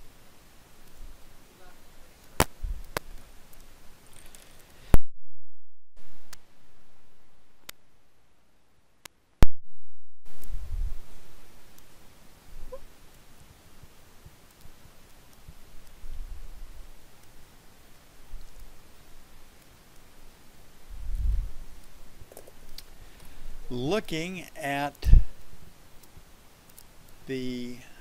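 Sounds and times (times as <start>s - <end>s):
low background hiss: 0.0s - 5.0s, 6.0s - 9.4s, 10.3s - 28.0s.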